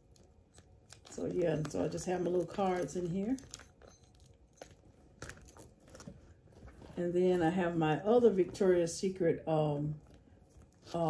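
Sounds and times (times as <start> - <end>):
handbag being unzipped: 4.5 - 7.5.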